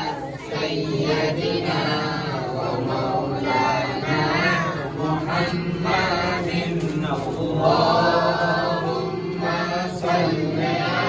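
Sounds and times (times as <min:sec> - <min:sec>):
men chanting a devotional song: 0:00.0 - 0:11.0.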